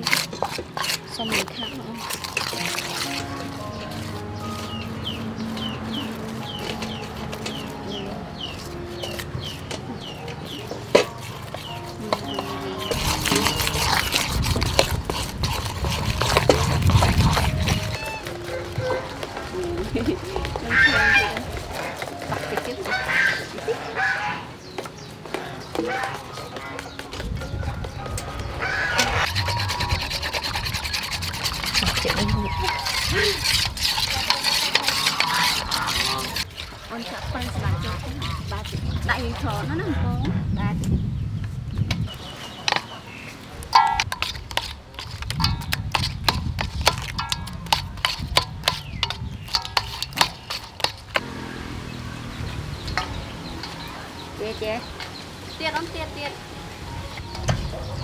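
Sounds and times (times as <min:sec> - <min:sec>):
batter stirred in steel bowl: 0:00.0 - 0:23.4, 0:29.0 - 0:39.8, 0:44.0 - 0:51.2
fowl calling: 0:17.7 - 0:19.4, 0:20.6 - 0:22.0, 0:22.6 - 0:24.6, 0:28.3 - 0:36.4
metal spoon clinking in bowl: 0:29.2 - 0:36.6, 0:43.8 - 0:51.1.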